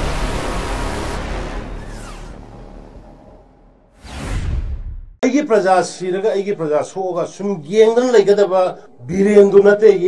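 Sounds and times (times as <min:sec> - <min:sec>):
deep rumble: 0:00.0 - 0:05.2.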